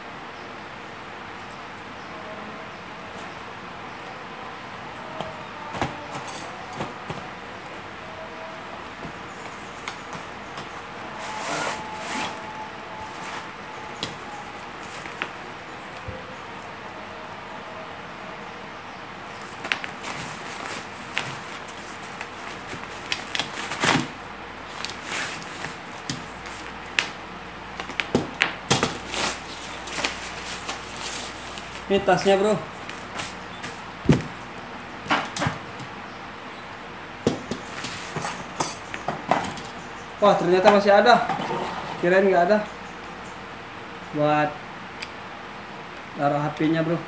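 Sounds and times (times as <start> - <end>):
steady background hiss: 0.0 - 47.0
cardboard box and bag rustling: 19.3 - 26.8, 27.8 - 34.4.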